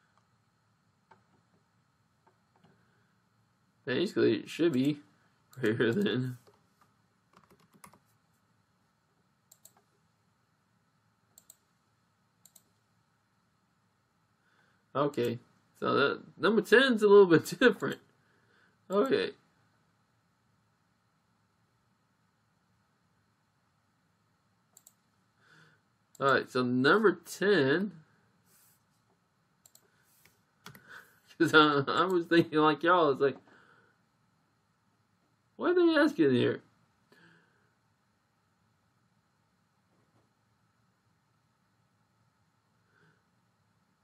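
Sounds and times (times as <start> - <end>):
computer mouse clicks: 4.7 - 8.1, 9.5 - 10.0, 11.3 - 11.7, 12.4 - 12.8, 24.7 - 25.1, 29.6 - 30.8
faint computer mouse clicks: 9.5 - 9.9, 11.4 - 11.6, 12.4 - 12.7, 24.7 - 25.0, 29.6 - 30.8.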